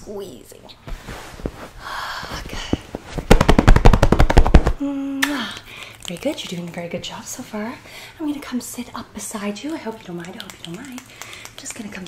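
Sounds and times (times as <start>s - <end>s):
rapid fast patting: 2.5s - 4.8s, 9.9s - 12.0s.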